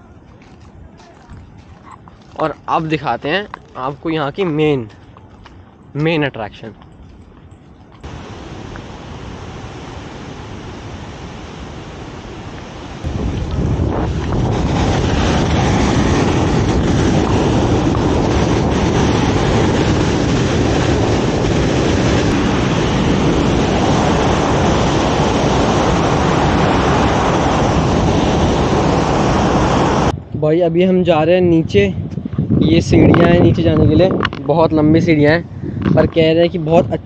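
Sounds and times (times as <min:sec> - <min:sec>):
wind buffeting microphone: 0:00.0 - 0:37.0
water rushing through spillway: 0:08.0 - 0:30.1.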